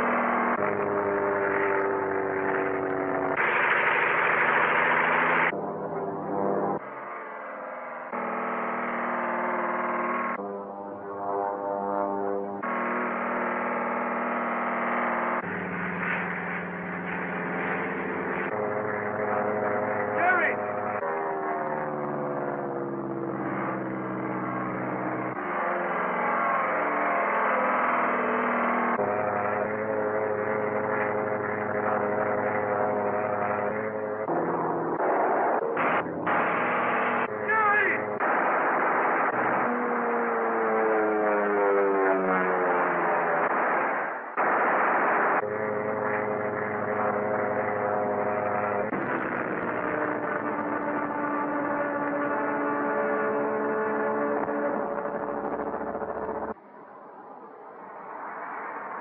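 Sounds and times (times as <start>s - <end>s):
biplane engines droning: 0.0s - 59.0s
machine-gun fire bursts: 3.4s - 5.5s, 35.1s - 40.0s, 43.2s - 45.4s.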